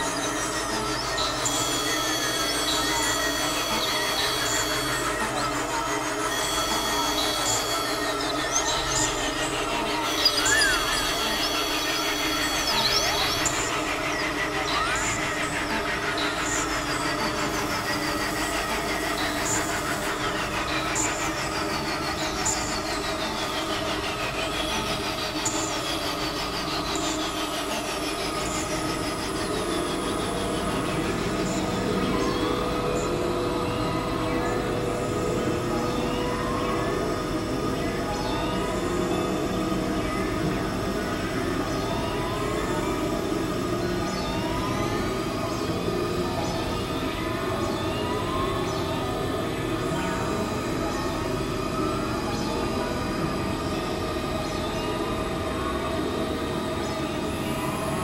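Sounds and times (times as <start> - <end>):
synthesizer drones: 0.0 - 58.0.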